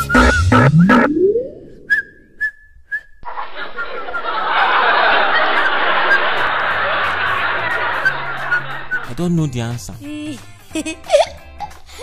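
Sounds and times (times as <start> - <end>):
high-pitched whistle tone: 0.0 - 3.2, 7.9 - 9.2.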